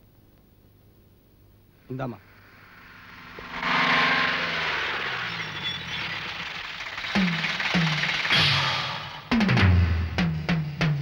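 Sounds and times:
car engine running with hiss: 1.8s - 9.3s.

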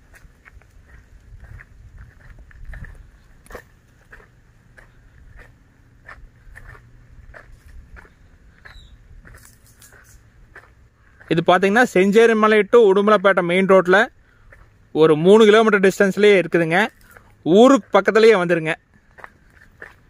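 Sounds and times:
faint low rumble: 0.0s - 11.4s
footsteps crunching on dry ground: 0.0s - 20.0s.

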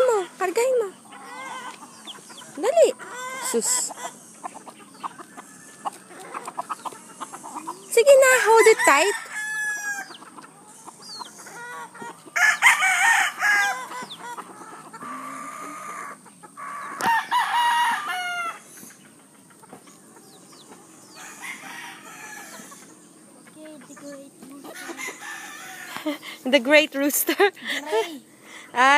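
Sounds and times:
chickens calling loudly: 0.0s - 28.9s
chickens clucking: 0.0s - 28.9s.

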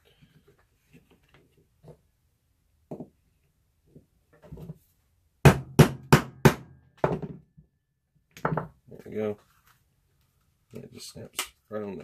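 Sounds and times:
soft handling sounds: 0.0s - 2.2s, 8.8s - 11.8s.

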